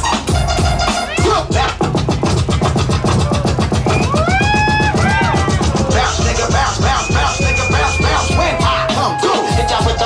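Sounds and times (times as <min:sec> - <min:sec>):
fast dense drum beat: 0:00.0 - 0:10.0
sliding pitched tone: 0:03.7 - 0:09.8.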